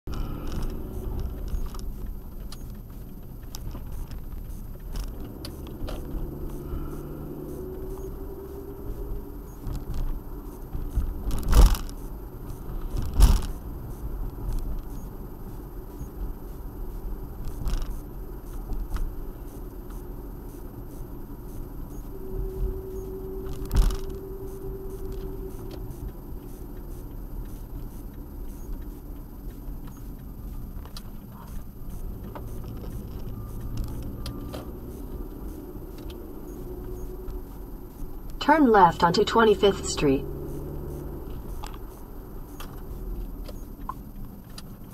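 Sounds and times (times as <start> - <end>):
road and engine rumble: 0.0 - 44.9
faint hum: 0.1 - 44.9.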